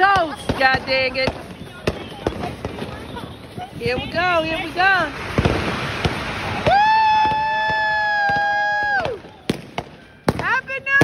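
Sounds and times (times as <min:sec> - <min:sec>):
whistling firework: 0:00.1 - 0:11.0.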